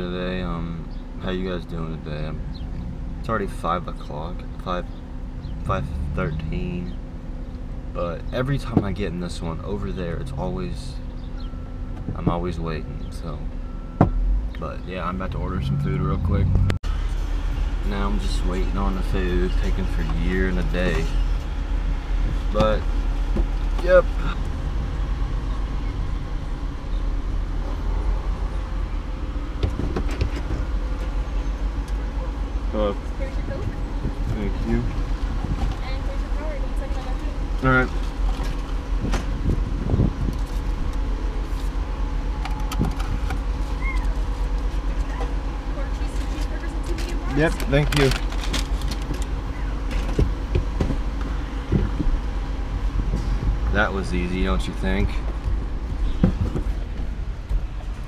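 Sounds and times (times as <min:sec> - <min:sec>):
vehicle engine idling: 0:00.0 - 0:58.0
paper bag rustling: 0:46.2 - 0:49.3
soft thumps: 0:55.2 - 0:57.2.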